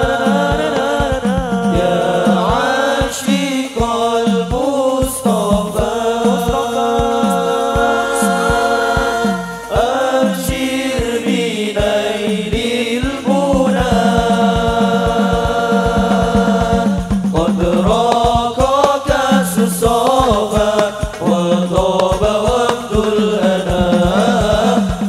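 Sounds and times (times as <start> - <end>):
frame drums beating: 0.0 - 25.0
men singing in unison: 0.0 - 25.0.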